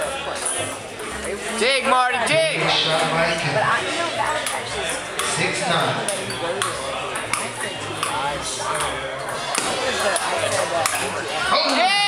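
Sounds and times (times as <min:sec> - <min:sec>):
background chatter: 0:00.0 - 0:12.0
table tennis ball clicks: 0:06.0 - 0:08.2.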